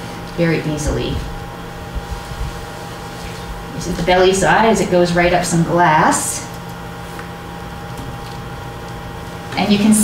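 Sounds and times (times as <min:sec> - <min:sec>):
fan hum and hiss: 0:00.0 - 0:10.0.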